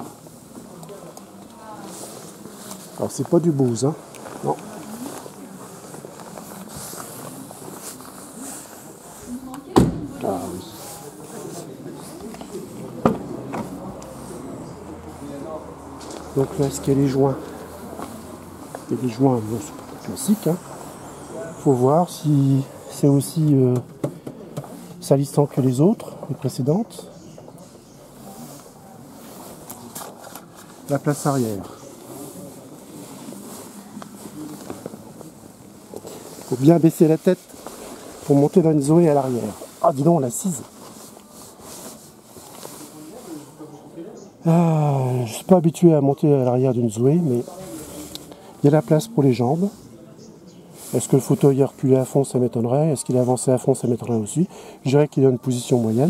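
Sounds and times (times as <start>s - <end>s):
rustling and shuffling: 0.0s - 21.0s, 24.4s - 43.9s, 45.3s - 50.0s, 50.6s - 53.6s.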